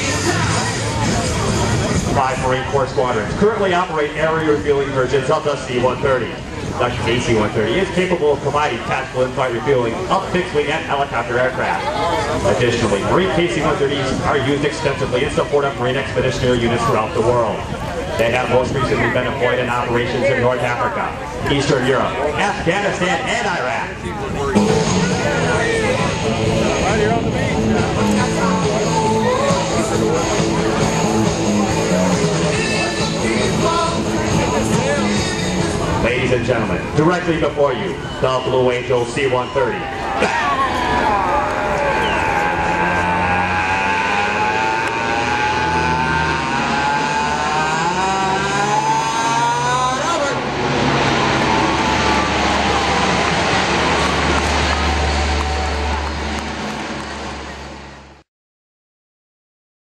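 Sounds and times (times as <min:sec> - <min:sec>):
turboprop engines droning: 0:00.0 - 0:58.2.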